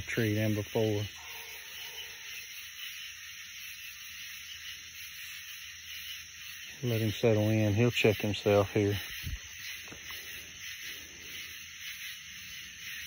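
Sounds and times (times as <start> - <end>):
insect chorus drone: 0.0 - 13.0.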